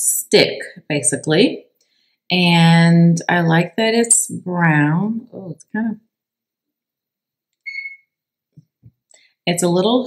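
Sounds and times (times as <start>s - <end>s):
short electronic beep: 7.7s - 8.1s.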